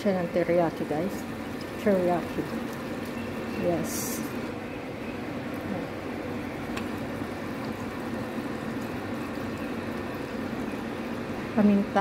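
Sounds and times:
meat sizzling in a pot: 0.0 - 12.0.

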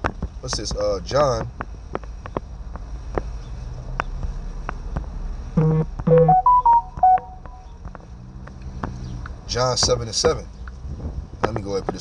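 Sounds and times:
phone message alert jingle: 5.6 - 7.4.

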